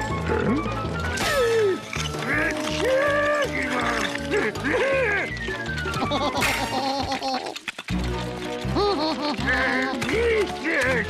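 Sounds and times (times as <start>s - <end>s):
cartoon music: 0.0s - 7.5s, 8.6s - 11.0s.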